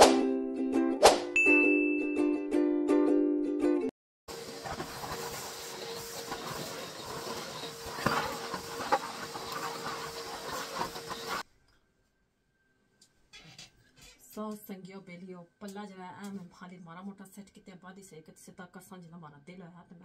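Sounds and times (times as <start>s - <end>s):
vacuum cleaner running: 4.3s - 11.4s.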